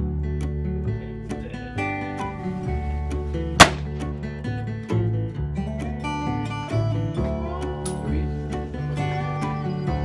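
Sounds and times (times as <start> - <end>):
strummed acoustic guitar music: 0.0 - 10.0
loud gunshot: 3.6 - 4.0.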